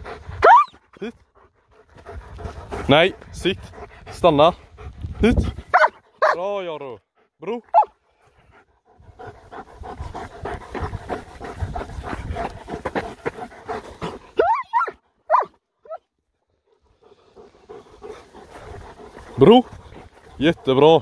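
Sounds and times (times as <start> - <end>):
dog panting heavily: 0.0 - 6.2, 7.0 - 15.6, 16.4 - 21.0
high-pitched dog whines: 0.4 - 0.8, 14.4 - 16.0.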